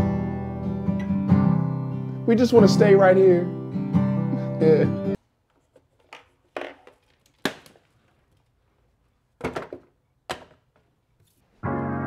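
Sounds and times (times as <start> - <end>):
sustained keyboard chords: 11.6 - 12.0.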